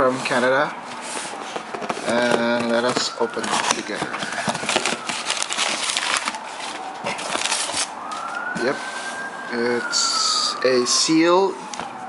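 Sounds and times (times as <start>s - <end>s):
distant siren wailing: 1.6s - 12.0s.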